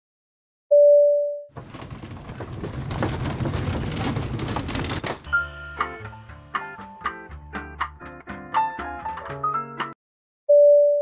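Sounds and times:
low rumbling noise: 1.6 - 5.2.

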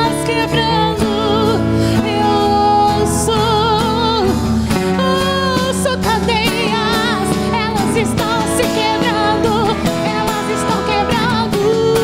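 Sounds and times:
acoustic guitar: 0.0 - 12.0
live band playing: 0.0 - 12.0
woman singing with vibrato: 0.0 - 12.0.

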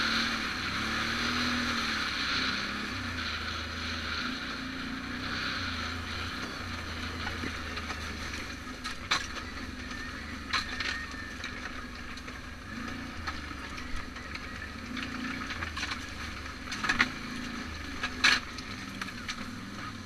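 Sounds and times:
off-road vehicle engine running: 0.0 - 20.0.

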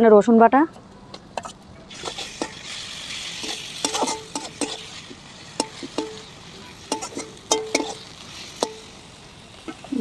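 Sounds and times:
onions sizzling in hot oil: 1.6 - 10.0
metal spatula striking pan: 3.4 - 4.9, 5.6 - 9.0.

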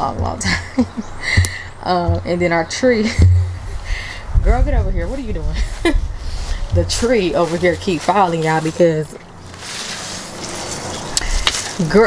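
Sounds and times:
gust of wind rushing: 3.4 - 6.8.

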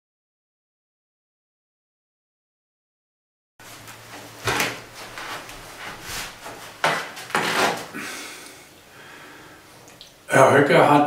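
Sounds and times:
clothing scuffs: 3.6 - 8.0
footsteps: 3.6 - 8.0.

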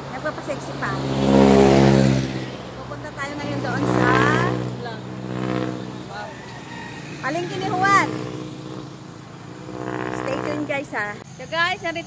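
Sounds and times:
vehicle engine passing: 0.0 - 11.2.

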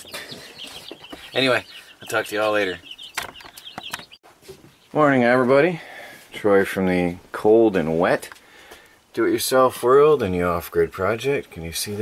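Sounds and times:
short bird calls and clicks: 2.8 - 4.2.

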